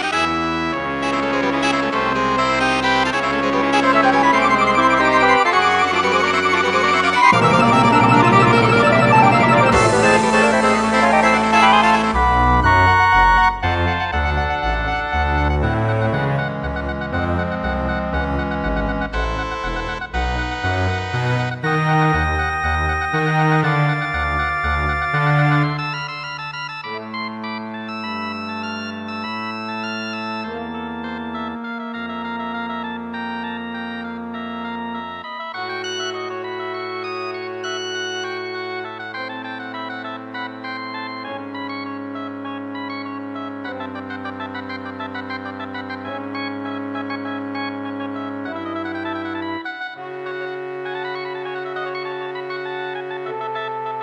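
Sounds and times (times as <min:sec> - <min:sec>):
wind orchestra playing: 0:00.0 - 0:26.1, 0:26.8 - 0:54.0.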